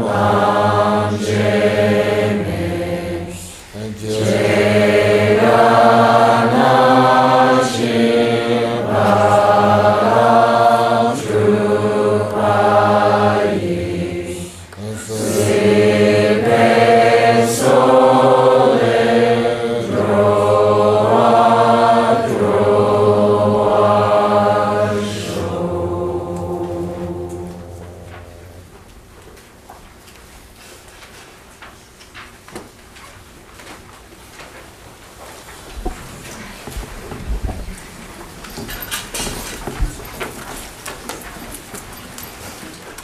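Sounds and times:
roomful of voices chanting a prayer: 0.0s - 29.5s, 35.5s - 43.0s.

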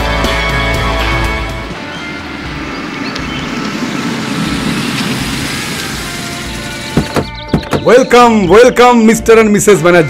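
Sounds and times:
car engine and tyre rumble: 0.0s - 8.0s.

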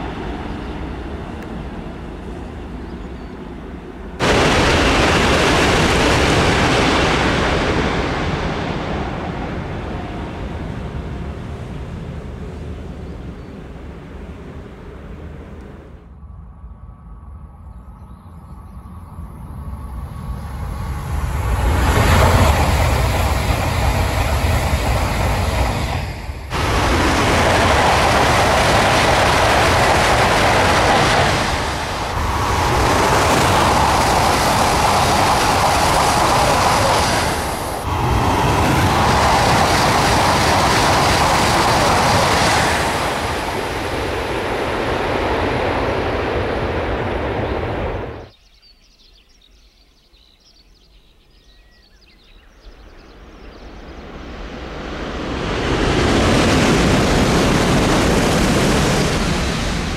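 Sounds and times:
high-speed train rushing past: 0.0s - 16.1s, 19.0s - 48.3s, 52.7s - 59.9s.

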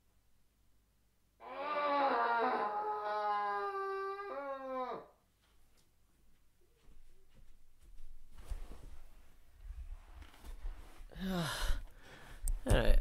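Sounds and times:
howl-like wailing cry: 1.4s - 5.2s.

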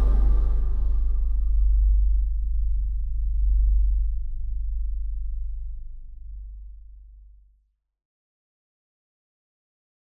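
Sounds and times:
synthesizer bass note: 0.0s - 2.4s.

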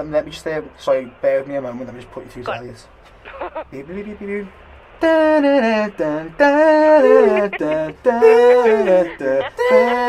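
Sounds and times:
person singing wordless tune: 5.0s - 10.0s.

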